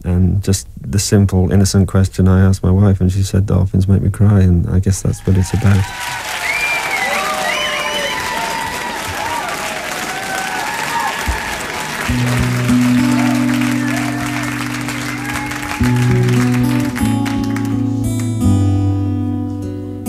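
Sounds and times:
audience applauding: 0:05.2 - 0:18.5
low held musical notes: 0:12.0 - 0:20.0.

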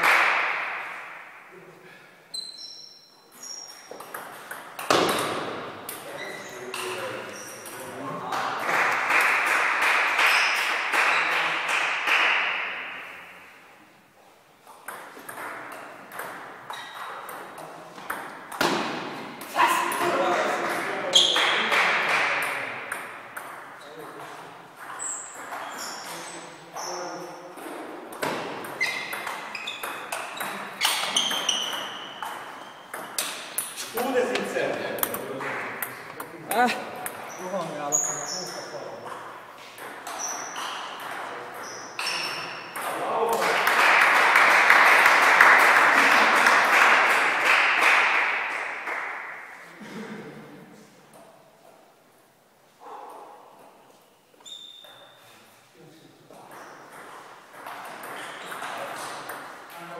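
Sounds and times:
voices in sports hall: 0:00.0 - 0:59.9
ball pinging on table: 0:04.0 - 0:06.0, 0:14.8 - 0:19.0.

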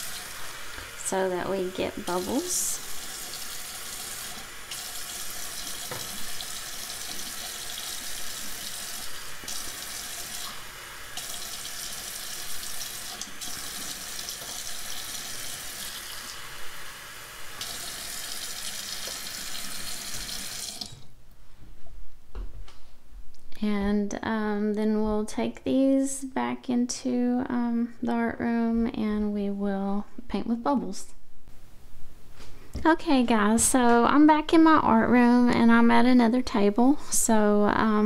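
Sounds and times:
faucet running into cups: 0:00.0 - 0:21.0.

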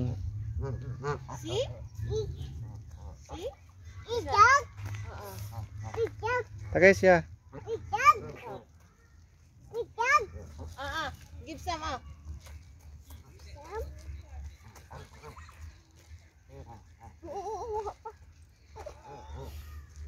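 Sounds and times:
geese calling: 0:00.0 - 0:06.2, 0:14.4 - 0:15.8, 0:16.4 - 0:20.0.

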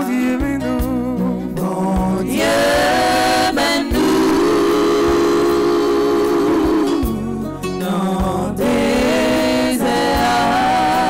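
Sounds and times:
group of women singing a hymn: 0:01.6 - 0:11.0.

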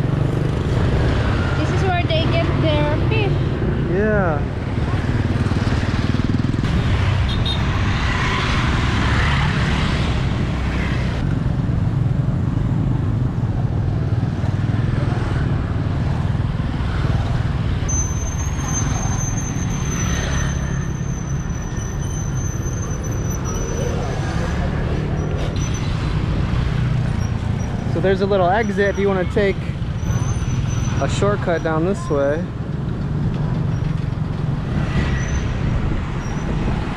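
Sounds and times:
motorbike traffic passing: 0:00.0 - 0:36.9
wind buffeting microphone: 0:32.6 - 0:36.9.

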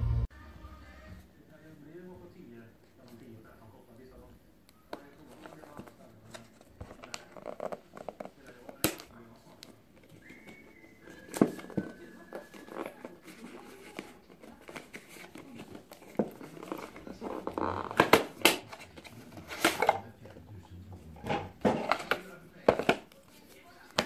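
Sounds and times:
paper and cardboard rustling: 0:05.0 - 0:20.4, 0:21.2 - 0:24.0.

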